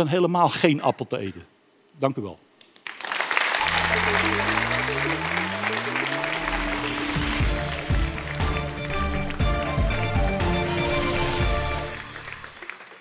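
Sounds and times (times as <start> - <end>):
audience applause: 2.8 - 13.0
outro music with steady beat: 3.7 - 12.6.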